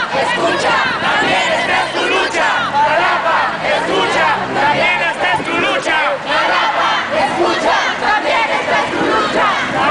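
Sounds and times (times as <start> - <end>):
crowd shouting a chant: 0.0 - 9.9.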